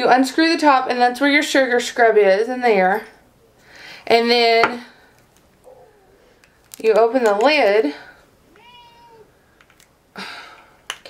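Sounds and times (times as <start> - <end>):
cat meowing: 8.5 - 9.4.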